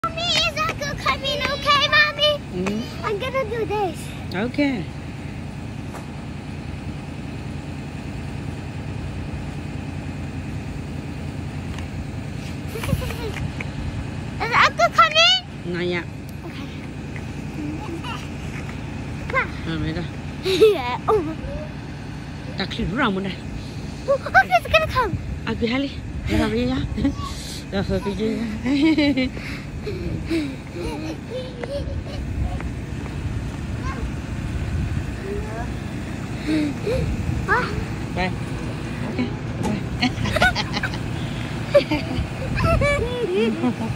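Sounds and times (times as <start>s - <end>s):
bus engine idling: 0.0s - 43.9s
wind buffeting microphone: 31.6s - 43.4s.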